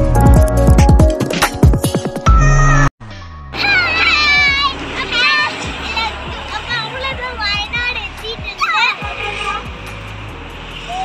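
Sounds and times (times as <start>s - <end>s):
background music with low bass: 0.0s - 3.5s, 5.6s - 11.0s
girls exclaiming and laughing: 3.6s - 9.7s.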